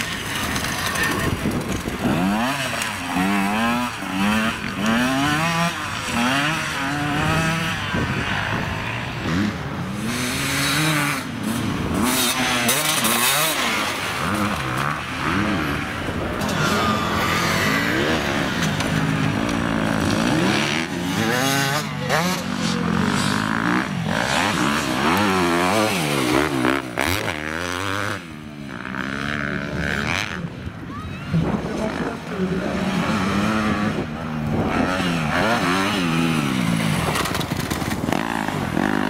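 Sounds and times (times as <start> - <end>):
dirt bike engines revving: 0.0 - 39.0.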